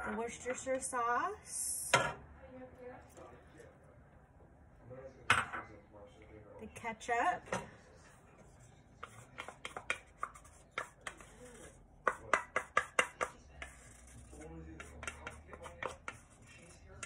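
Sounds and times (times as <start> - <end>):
wooden spatula tapping plastic cup: 9.0 - 11.3, 12.0 - 13.8, 14.8 - 16.2.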